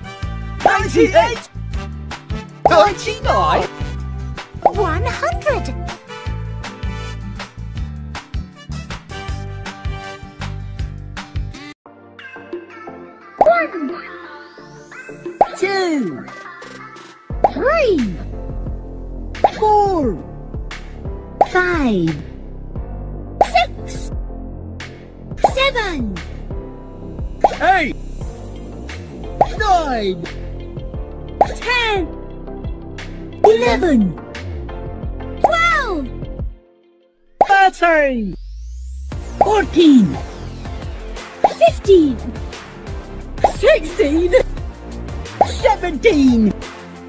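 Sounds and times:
children's music with bass line: 0:00.0 - 0:36.5, 0:37.4 - 0:46.9
cartoon plop: 0:04.6 - 0:05.2, 0:15.4 - 0:15.6, 0:21.4 - 0:21.7, 0:23.4 - 0:23.7, 0:25.4 - 0:25.6, 0:27.4 - 0:27.6, 0:29.4 - 0:29.6, 0:31.4 - 0:31.6, 0:35.4 - 0:35.8, 0:41.4 - 0:41.7, 0:43.4 - 0:43.6, 0:45.4 - 0:45.6
child-like voice calling: 0:13.3 - 0:14.3, 0:14.9 - 0:18.3, 0:35.4 - 0:36.1, 0:41.5 - 0:42.2
cartoon bloops sliding down: 0:27.4 - 0:27.6.

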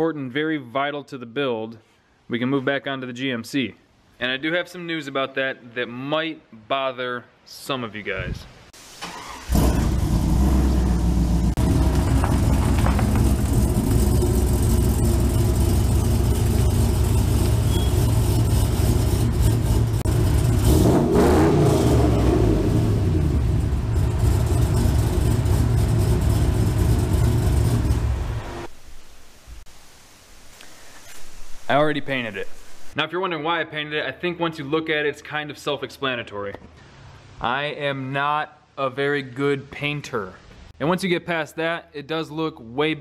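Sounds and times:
pickup truck engine running: 0:09.5 - 0:21.1, 0:21.7 - 0:28.7.

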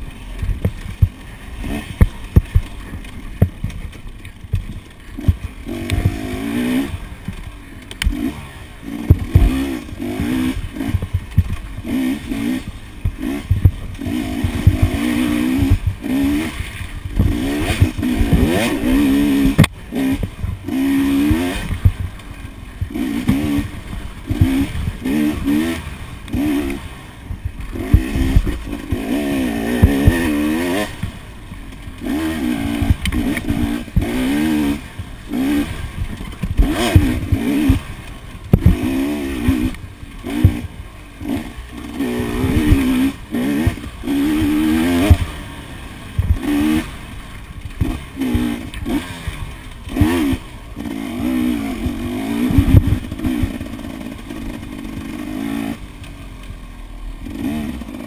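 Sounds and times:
bike knocks and rattles: 0:00.0 - 0:56.6
motorcycle engine revving: 0:00.0 - 0:58.0.

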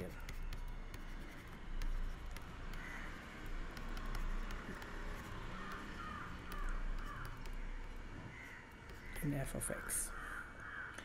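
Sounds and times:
faint bird calls: 0:02.7 - 0:03.2, 0:05.6 - 0:11.0.

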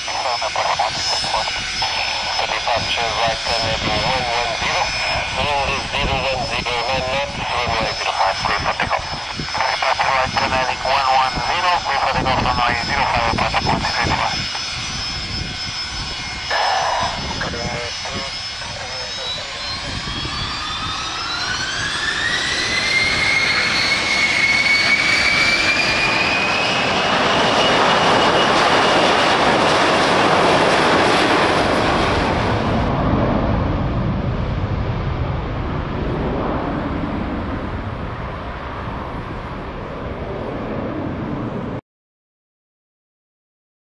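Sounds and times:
jet engines spooling up: 0:00.0 - 0:41.8.

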